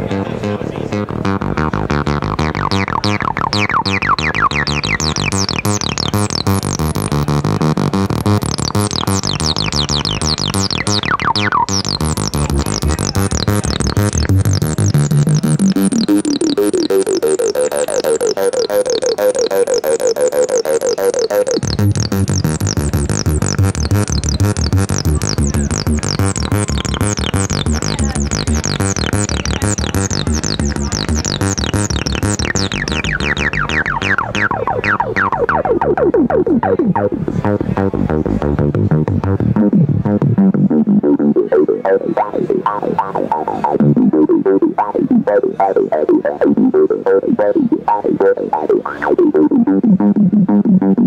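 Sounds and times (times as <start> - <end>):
resonant filter sweep: 0.0 - 51.0
synthesizer fast note pattern: 0.0 - 51.0.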